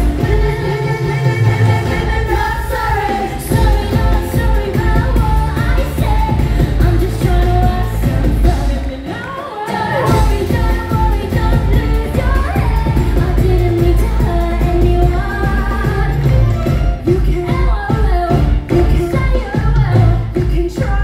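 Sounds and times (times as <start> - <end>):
live band with pounding bass: 0.0 - 9.0, 9.7 - 21.0
women singing into microphones: 0.0 - 21.0.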